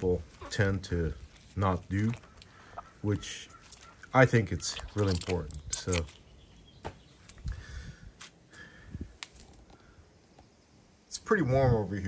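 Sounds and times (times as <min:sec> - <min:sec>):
small water splashes: 0:01.4 - 0:03.0, 0:03.6 - 0:06.2.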